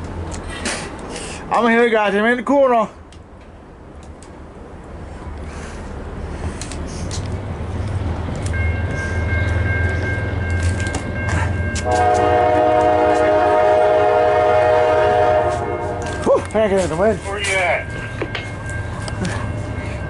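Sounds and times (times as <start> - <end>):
locomotive engine rumble: 0.0 - 20.0
locomotive air horn blast: 11.8 - 16.2.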